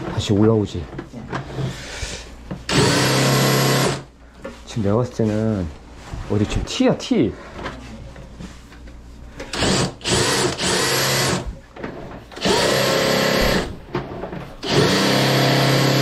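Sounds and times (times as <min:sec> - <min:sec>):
drain-cleaning machine humming: 0:14.6 - 0:16.0.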